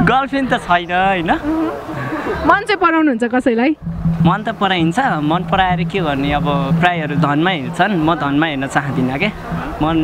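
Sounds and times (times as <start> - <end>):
people talking: 0.0 - 10.0
low hum: 3.7 - 10.0.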